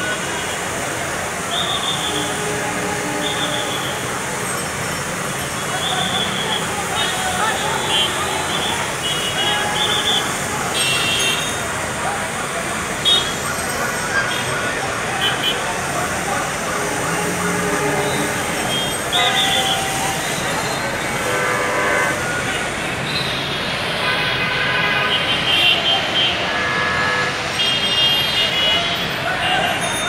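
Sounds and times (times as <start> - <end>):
crowd of voices: 0.0 - 30.0
traffic running: 0.0 - 30.0.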